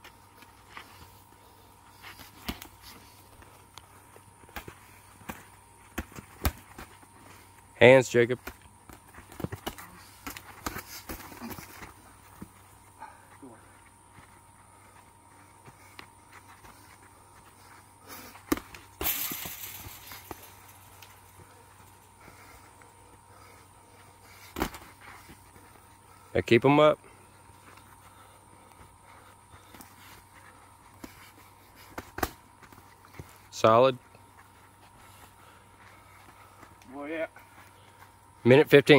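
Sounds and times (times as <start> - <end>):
faint steady background hum: 0.0 - 38.9
gloved punches smacking: 4.5 - 6.9, 18.4 - 21.1, 24.5 - 24.9, 31.9 - 32.4
feet scuffing on dirt: 8.7 - 26.1.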